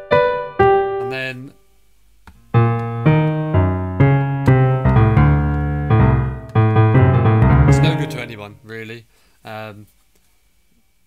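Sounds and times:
piano chords ringing: 0.0 - 1.5, 2.5 - 8.7.

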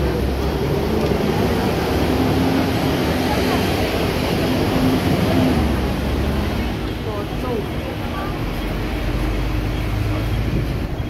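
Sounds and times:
people's voices: 0.0 - 11.0
traffic: 0.0 - 11.0.

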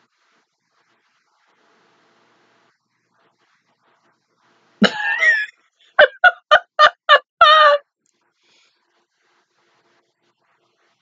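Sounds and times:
woman laughing: 4.8 - 7.8.

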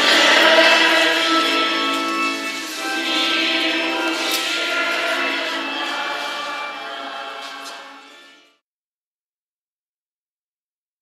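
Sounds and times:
choral music with sustained chords: 0.0 - 8.5.

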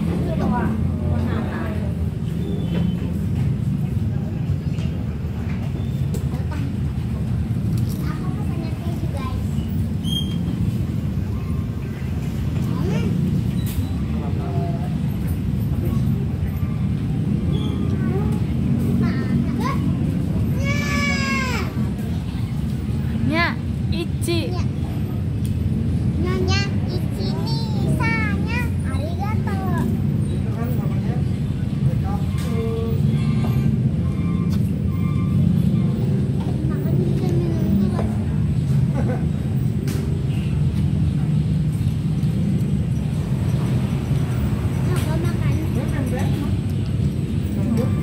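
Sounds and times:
food court crowd din: 0.0 - 48.0
low engine rumble: 0.0 - 48.0
children calling out: 19.0 - 21.9.

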